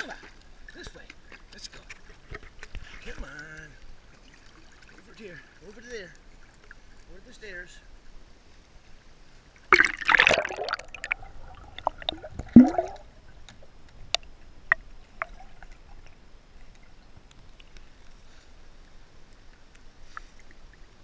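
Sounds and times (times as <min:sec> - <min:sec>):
pool water splashing: 0:00.0 - 0:17.8
water drips: 0:09.5 - 0:18.1
loud gurgling plunge: 0:09.7 - 0:13.0.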